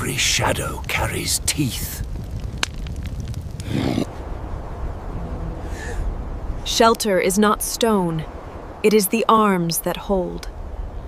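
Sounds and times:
low steady rumble: 1.5 - 8.9
short swell of noise: 5.1 - 6.7.

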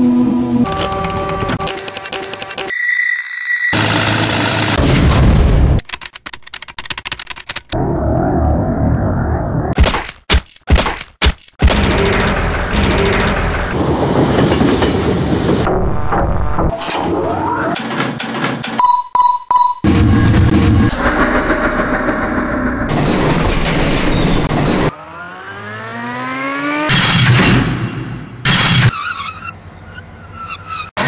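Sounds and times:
rapid mechanical clicks: 1.6 - 2.7, 5.8 - 7.8, 9.8 - 13.8
machine rumble: 11.6 - 16.7, 19.9 - 24.9.

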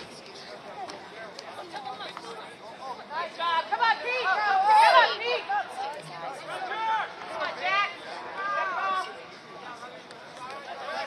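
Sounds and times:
crowd shouting and chattering: 0.0 - 11.0.

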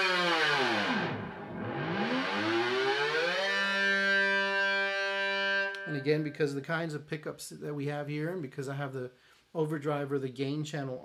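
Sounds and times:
distorted electric guitar dive bomb: 0.0 - 6.3.

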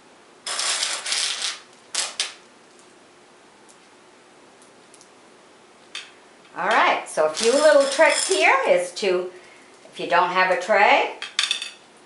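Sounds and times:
jelly beans rattling on glass: 7.3 - 8.5.

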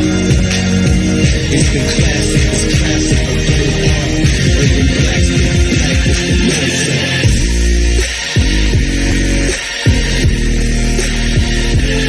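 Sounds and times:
electronic bass music: 0.0 - 12.0.

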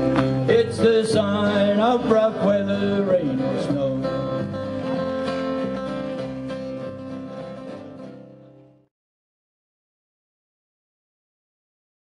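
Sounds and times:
acoustic guitars strumming: 0.0 - 8.9.

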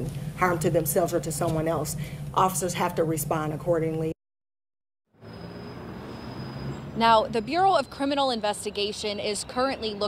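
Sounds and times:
low traffic hum: 0.0 - 4.2, 5.1 - 10.0.

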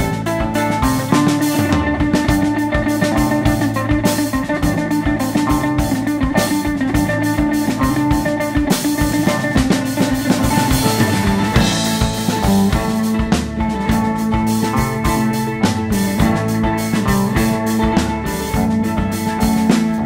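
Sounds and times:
bass: 0.0 - 20.0
drum kit: 0.0 - 20.0
mandolin lead: 0.0 - 20.0.

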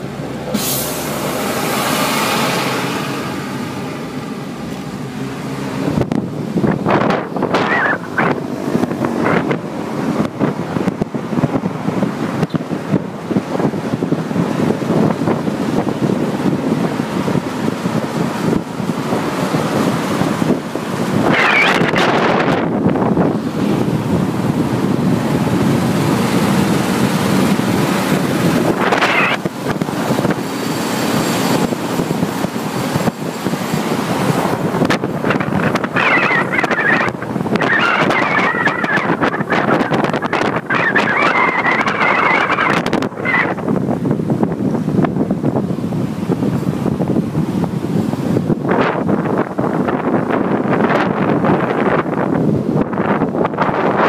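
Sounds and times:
vehicle road and wind noise: 0.0 - 54.0.

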